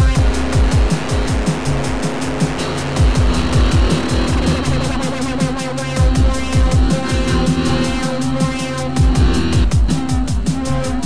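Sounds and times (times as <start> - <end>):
falling bass drops: 0.0 - 11.0
fast hi-hat-like ticks: 0.0 - 11.0
harsh grinding noise: 0.0 - 11.0.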